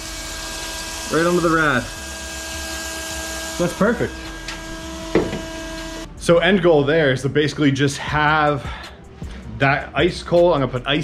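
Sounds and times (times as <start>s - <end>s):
electric pump whining: 0.0s - 6.1s.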